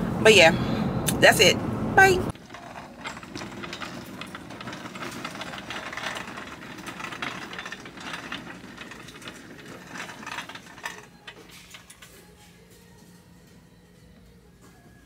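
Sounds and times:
shopping cart rattling on hard floor: 2.3 - 12.4.

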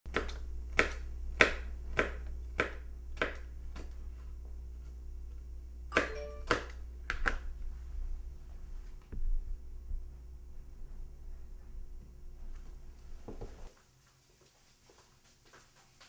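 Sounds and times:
knife chopping on cutting board: 0.1 - 3.4
steady low hum: 0.1 - 13.7.

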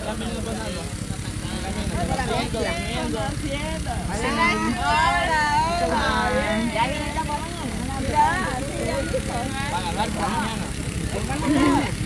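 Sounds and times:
people conversing: 0.0 - 12.0.

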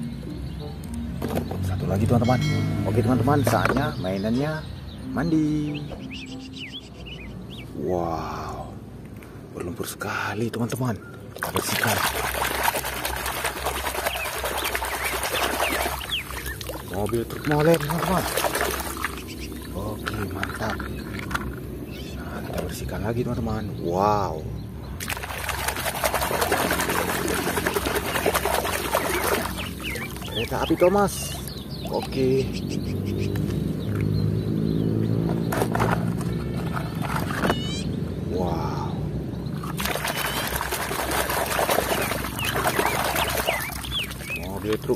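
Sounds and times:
bird chirps: 0.0 - 8.8, 13.9 - 25.1, 26.5 - 40.9, 41.6 - 44.9
water splashing and sloshing: 11.2 - 23.0, 24.8 - 32.3, 32.9 - 37.9, 39.4 - 44.9
plastic toys knocking in a tub: 35.3 - 37.6.

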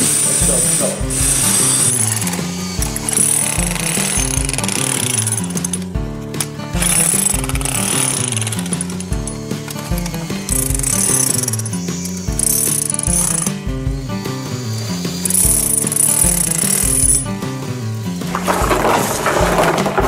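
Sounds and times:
background music with steady beat: 0.0 - 20.0
demolition hammer chiseling concrete: 0.0 - 20.0.

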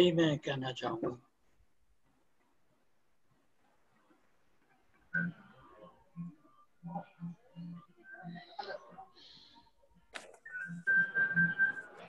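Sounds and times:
faint muffled sounds: 0.0 - 12.0
high whistling tone: 5.1 - 6.6, 10.4 - 12.0.

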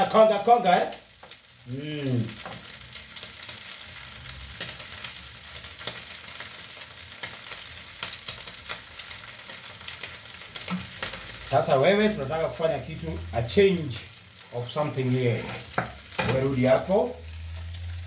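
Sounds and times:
meat sizzling in a pan: 0.0 - 18.0
man humming: 1.6 - 2.4.

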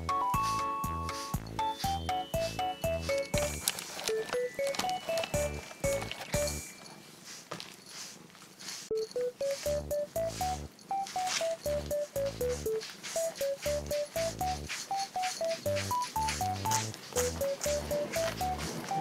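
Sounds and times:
bouncy background music: 0.0 - 6.8, 9.0 - 19.0.

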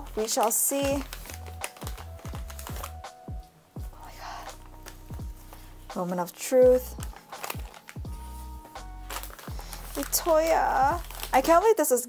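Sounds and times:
package handling taps and rustles: 0.0 - 6.2, 6.8 - 11.7
background music: 0.0 - 12.0.

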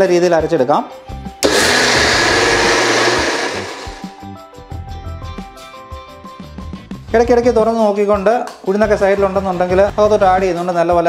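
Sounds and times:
mixer grinder whirring: 1.4 - 4.2.

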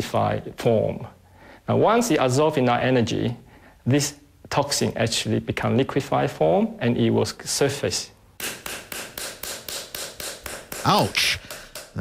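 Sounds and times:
stick beating on bare skin: 8.4 - 12.0.

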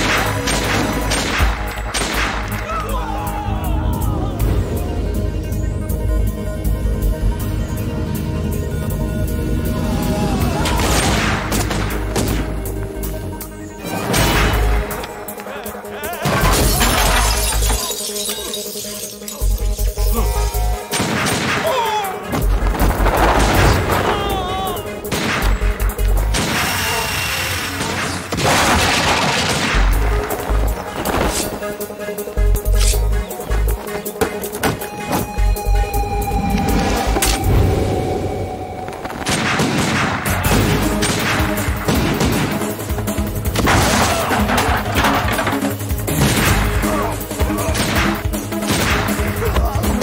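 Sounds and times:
pistol shots: 0.0 - 2.6, 20.9 - 21.8, 27.7 - 31.7, 39.2 - 42.8
dramatic background score: 0.0 - 50.0
glass chandelier crashing and shattering: 16.3 - 19.4.

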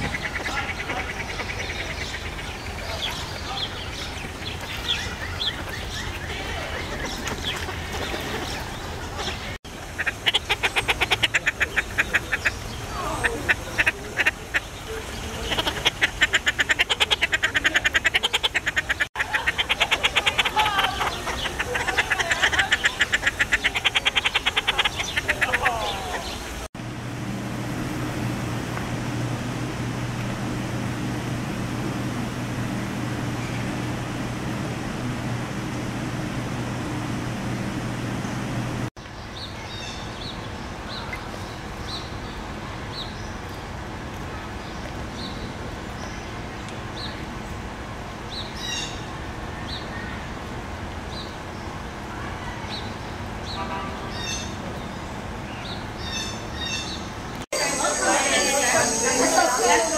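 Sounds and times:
terns calling: 0.0 - 50.4, 51.0 - 59.9
low mechanical hum: 0.0 - 59.9.

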